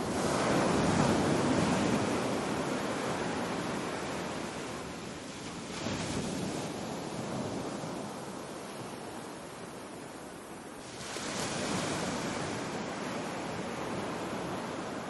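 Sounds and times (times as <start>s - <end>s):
small waves washing onto sand: 0.0s - 15.0s.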